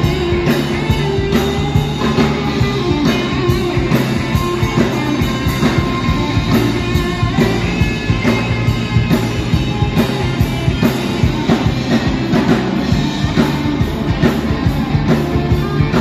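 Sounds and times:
drum kit beat: 0.0 - 16.0
electric guitar: 0.0 - 16.0.

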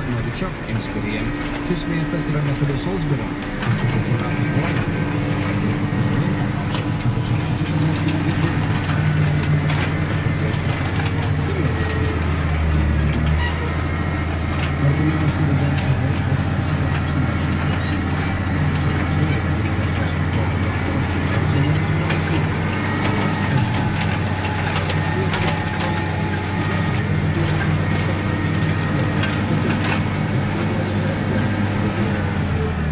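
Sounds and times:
clicks and rattles from implement: 0.0 - 32.9
tractor engine running under load: 0.0 - 32.9.

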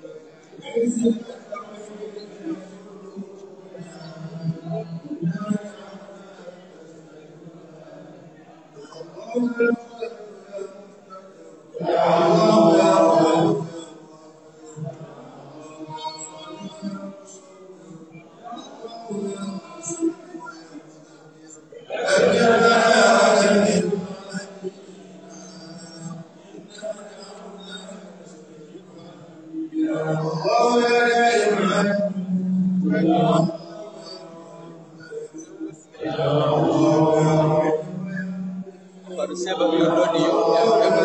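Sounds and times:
men chanting low drone: 0.0 - 41.0.

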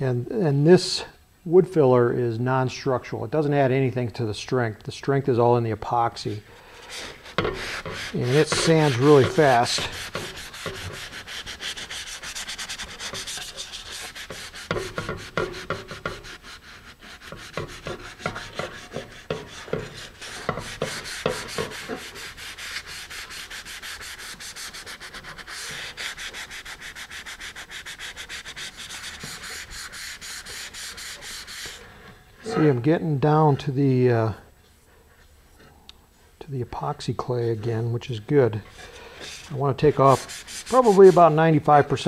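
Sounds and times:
sandpaper rubbing back and forth: 6.8 - 31.9, 38.7 - 42.0.

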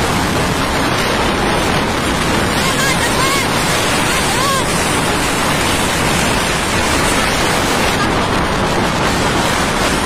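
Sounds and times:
wind rushing over microphone: 0.0 - 10.0.

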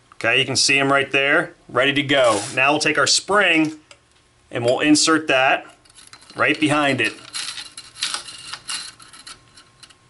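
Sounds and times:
coil spring rattling and jingling: 5.8 - 10.0.

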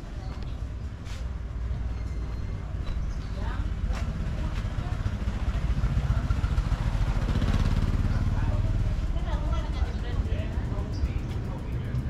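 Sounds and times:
motorcycle engine running: 3.9 - 12.0.

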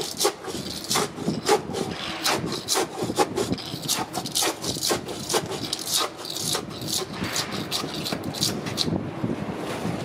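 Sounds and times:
scraper scraping paint off wall: 0.0 - 8.9.

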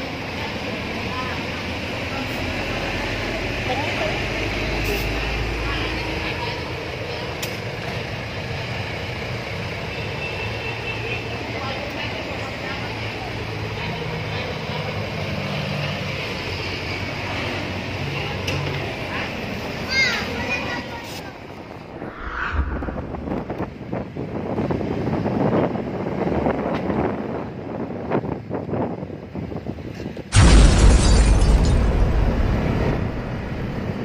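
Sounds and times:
road traffic and street noise: 0.0 - 30.6, 31.4 - 34.0.

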